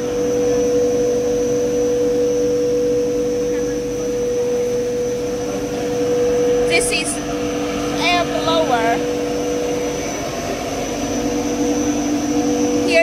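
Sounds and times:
machine humming and whining: 0.0s - 13.0s.

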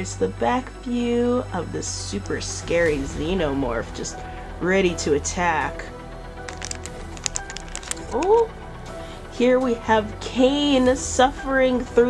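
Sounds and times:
background music: 0.0s - 12.0s
foil packaging crinkling: 6.5s - 8.4s.

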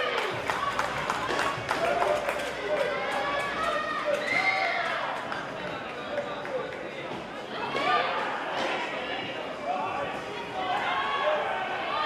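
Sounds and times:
voices shouting and calling out: 7.4s - 12.0s.

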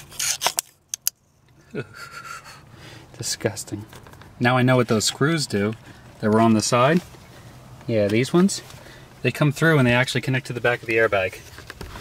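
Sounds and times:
plastic scraping rustle: 10.6s - 12.0s.

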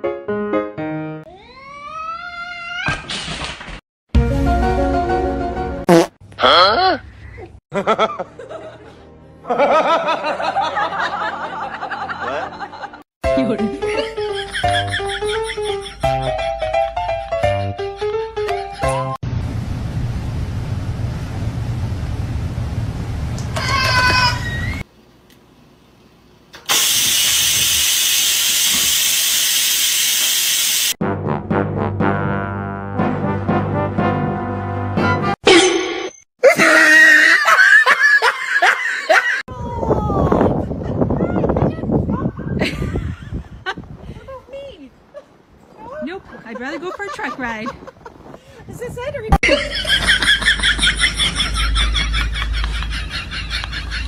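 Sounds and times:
cat meowing: 1.3s - 3.0s
loud hiss-like noise: 26.6s - 31.0s.

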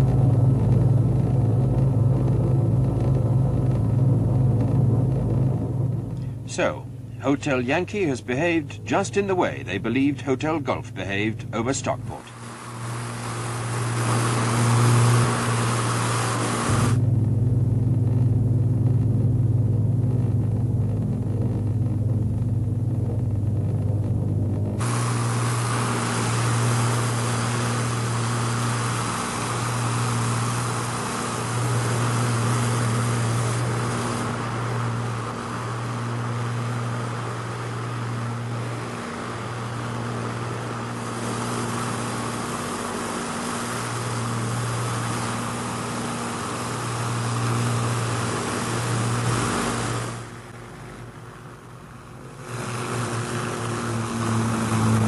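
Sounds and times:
propeller airliner droning: 0.0s - 55.0s.

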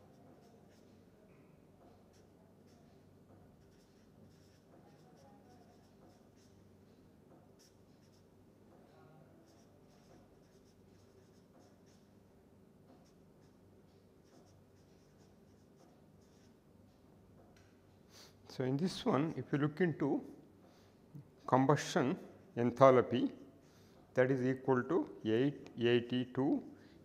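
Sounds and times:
marker pen scratching on paper: 0.0s - 1.0s, 1.9s - 6.6s, 7.4s - 8.3s, 9.4s - 12.2s, 12.9s - 16.6s
faint steady low hum: 0.0s - 27.0s.

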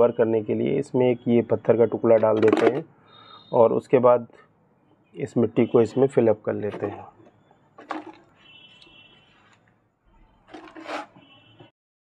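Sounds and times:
soil rustling in plastic pot: 10.5s - 11.2s.

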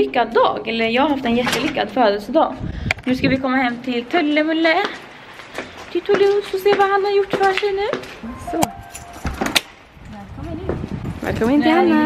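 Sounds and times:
keys jangling: 8.8s - 9.5s.

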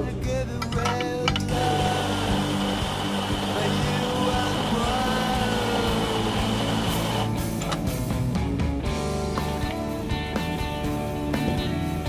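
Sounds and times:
guitar music: 0.0s - 12.0s
steam wand hissing: 1.5s - 7.3s.

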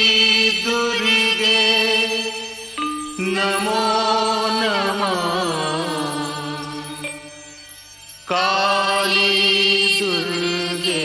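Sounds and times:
chant-like devotional singing: 0.0s - 11.0s.

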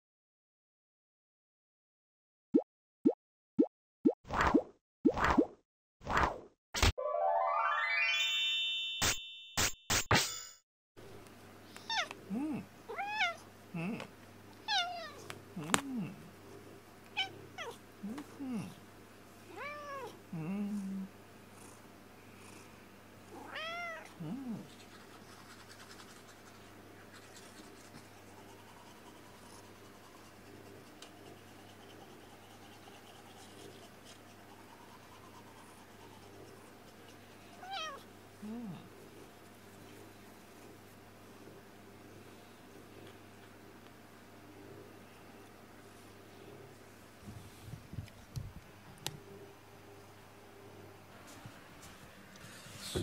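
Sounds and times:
cat meowing: 12.9s - 13.4s, 37.6s - 38.0s.

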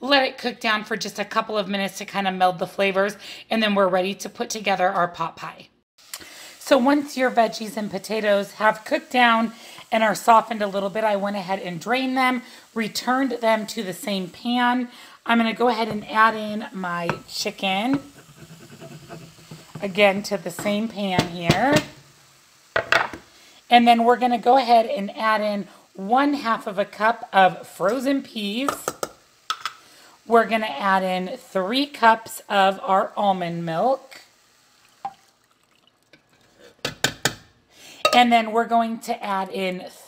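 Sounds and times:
food sliding into saucepan: 6.1s - 20.4s, 36.2s - 36.8s
kitchenware knocks: 22.8s - 23.2s, 36.8s - 37.5s
milk pouring into saucepan: 34.5s - 36.9s.

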